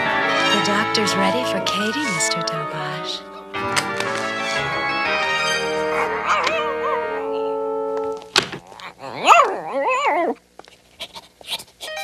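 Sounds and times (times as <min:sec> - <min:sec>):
cartoon background music: 0:00.0 - 0:08.1
dog yelping: 0:05.8 - 0:07.5, 0:08.6 - 0:10.4.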